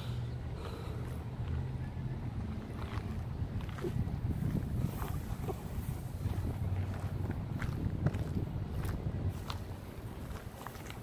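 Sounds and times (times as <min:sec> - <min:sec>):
wind buffeting microphone: 0:01.3 - 0:11.0.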